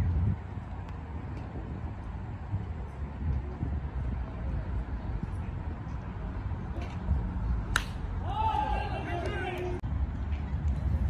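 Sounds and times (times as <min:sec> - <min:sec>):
baseball bat crack: 0:06.7 - 0:09.8.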